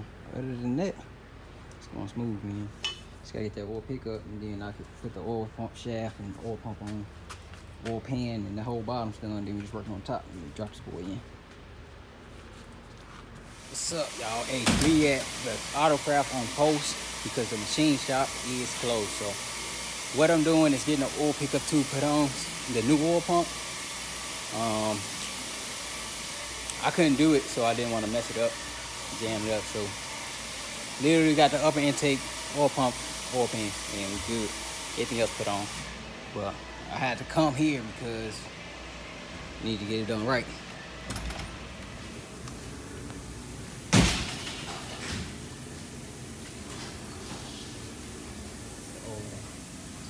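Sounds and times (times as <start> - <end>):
man speaking: 0.3 - 1.1, 39.6 - 40.6, 49.0 - 49.5
steady hiss: 13.4 - 38.5, 41.6 - 50.0.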